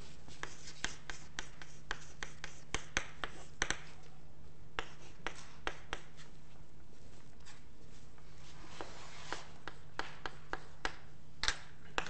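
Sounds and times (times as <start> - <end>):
chalk tapping and scratching on blackboard: 0.0 - 4.0, 4.8 - 6.4, 8.4 - 12.0.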